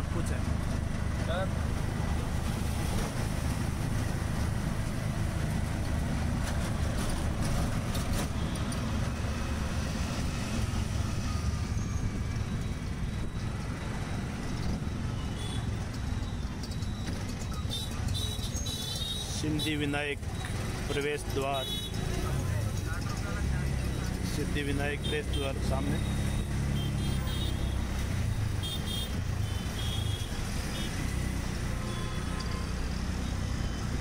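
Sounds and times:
auto-rickshaw engine rumble: 0:00.0 - 0:34.0
surrounding traffic noise: 0:00.0 - 0:34.0.

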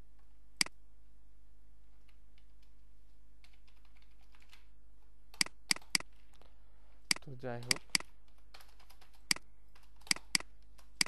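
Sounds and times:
low electrical hum: 0:00.0 - 0:11.0
computer clicks: 0:05.3 - 0:06.4, 0:07.1 - 0:11.0.

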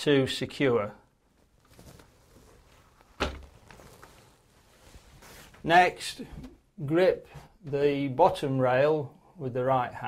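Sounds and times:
handling rustle: 0:01.3 - 0:05.6.

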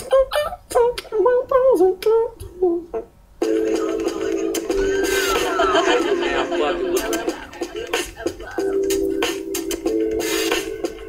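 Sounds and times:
man humming a melody: 0:00.0 - 0:05.5.

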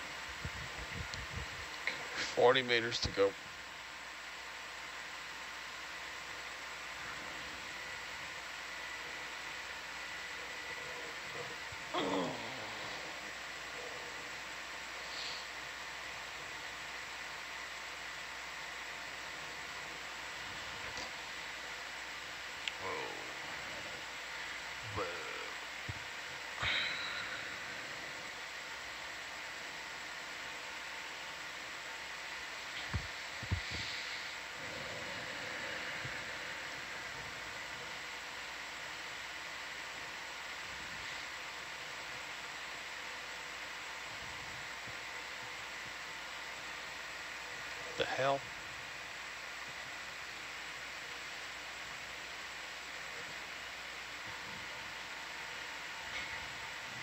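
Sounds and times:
faint steady hum: 0:00.0 - 0:57.0
microphone hiss: 0:00.0 - 0:57.0.

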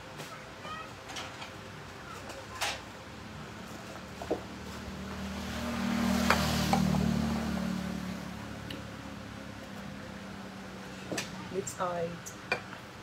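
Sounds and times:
vehicle engine hum passing by: 0:03.1 - 0:11.8.

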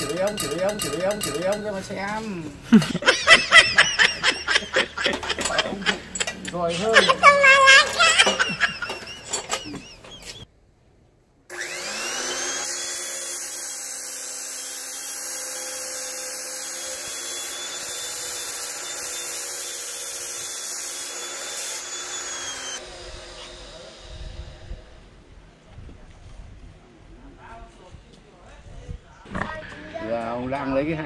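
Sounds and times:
chop saw cutting steel tube: 0:06.9 - 0:10.3, 0:11.5 - 0:24.8.

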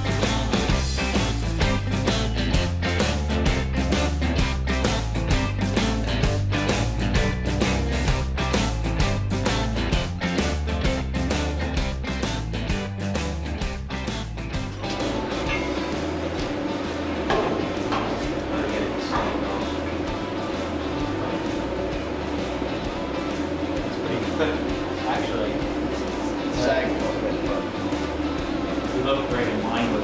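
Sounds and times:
rock music with guitar and bass: 0:00.0 - 0:30.0.

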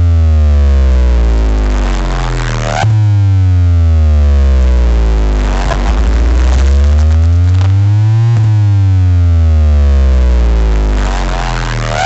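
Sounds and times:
loud electronic track with heavy bass: 0:00.0 - 0:12.0.

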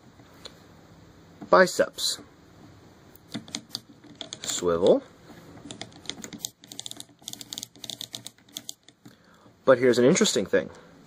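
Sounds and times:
plastic toy joint clicking: 0:03.3 - 0:05.0.

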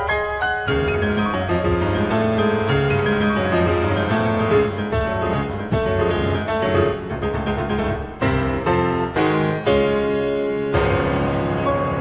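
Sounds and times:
solo classical piano: 0:00.0 - 0:12.0.

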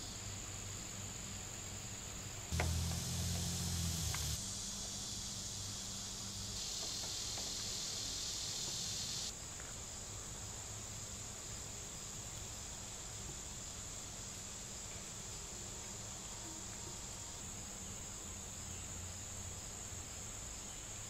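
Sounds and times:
high insect chirring: 0:02.5 - 0:09.3
low hum: 0:02.6 - 0:04.6.

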